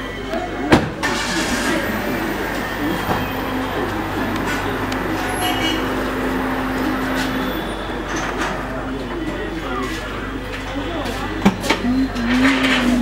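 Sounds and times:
people's voices: 0:00.0 - 0:13.0
traffic: 0:00.0 - 0:13.0.

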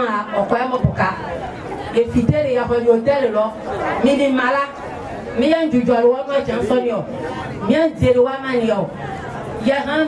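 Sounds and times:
woman talking into microphone: 0:00.0 - 0:01.3, 0:01.9 - 0:04.8, 0:05.4 - 0:09.0, 0:09.6 - 0:10.0
people chattering: 0:00.0 - 0:10.0.

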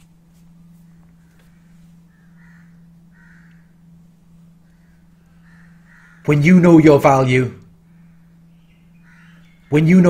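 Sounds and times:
steady low hum: 0:00.0 - 0:10.0
faint harsh bird calls: 0:00.5 - 0:07.0, 0:07.6 - 0:10.0.

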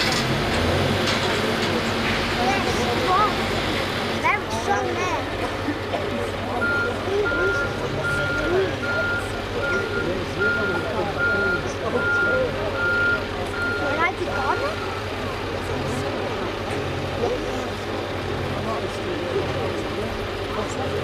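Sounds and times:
diesel engine running: 0:00.0 - 0:21.0
people talking: 0:00.0 - 0:21.0
truck warning beeper: 0:06.5 - 0:15.7.

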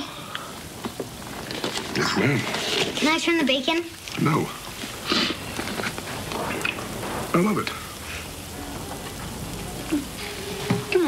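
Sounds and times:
bacon sizzling in a frying pan: 0:00.0 - 0:11.0.

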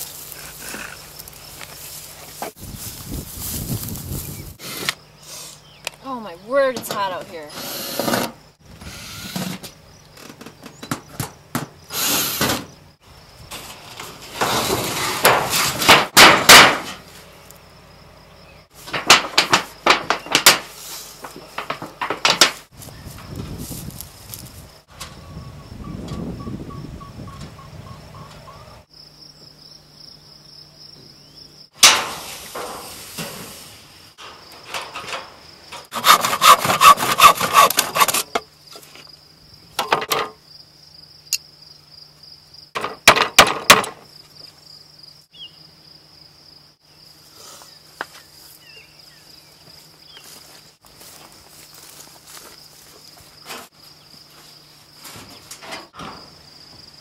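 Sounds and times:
crickets chirping: 0:00.0 - 0:16.2, 0:16.9 - 0:57.0
rasping sawing strokes: 0:35.9 - 0:38.4.

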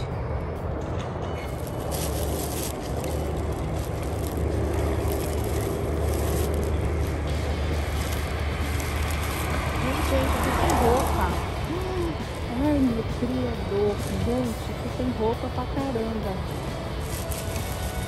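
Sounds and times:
road traffic rumble: 0:00.0 - 0:18.0
plastic trash bags rustling: 0:01.4 - 0:15.0, 0:15.9 - 0:18.0.

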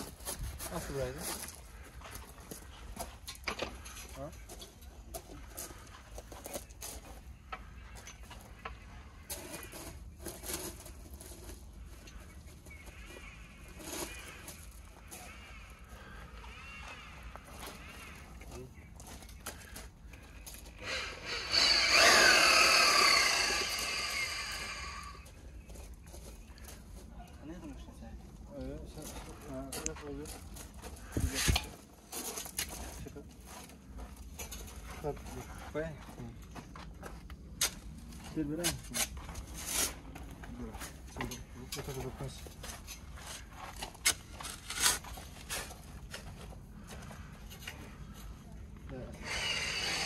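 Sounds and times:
electric drill motor whine: 0:20.8 - 0:25.2, 0:49.1 - 0:50.0.

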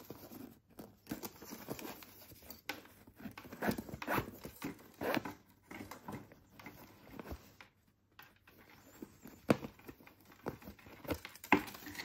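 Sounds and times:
boot laces pulled through eyelets: 0:00.0 - 0:05.4
handling rustle: 0:00.0 - 0:12.0.

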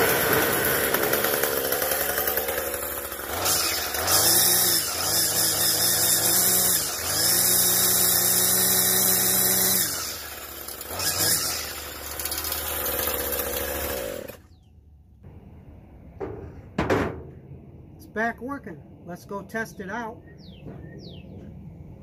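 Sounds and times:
string trimmer engine revving: 0:00.0 - 0:14.5.

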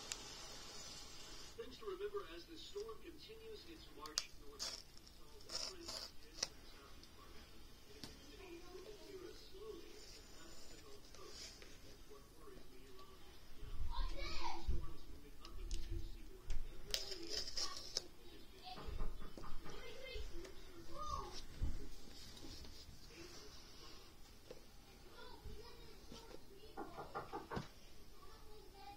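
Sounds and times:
paper tearing: 0:04.1 - 0:06.6, 0:16.9 - 0:18.2.

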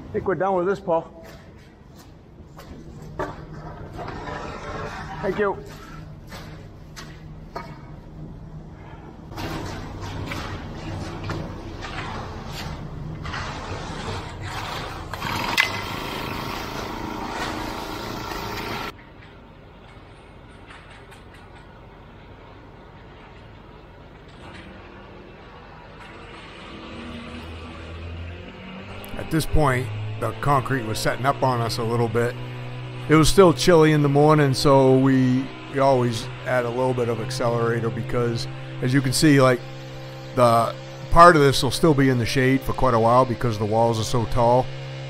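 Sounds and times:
concrete scraping and knocking: 0:02.8 - 0:08.0.

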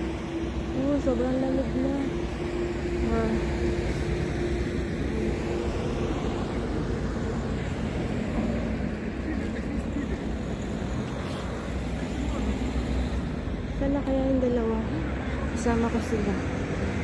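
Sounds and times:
passing cars: 0:00.0 - 0:17.0.

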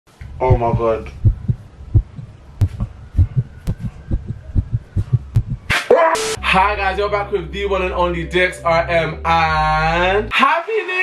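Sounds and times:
heartbeat thumps: 0:00.4 - 0:05.7.

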